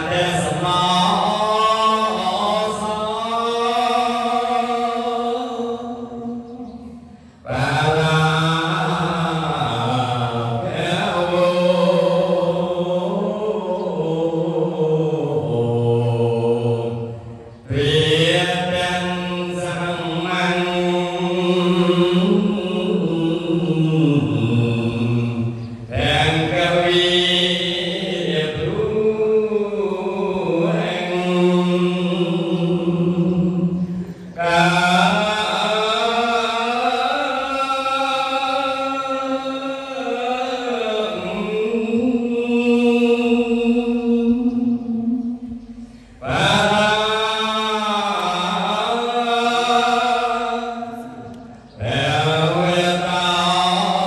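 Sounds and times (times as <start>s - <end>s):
man chanting into a microphone: 0.0s - 54.0s.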